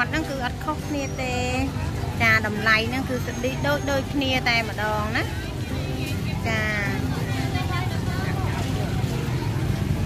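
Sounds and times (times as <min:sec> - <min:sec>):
faint voices talking: 0:00.0 - 0:10.0.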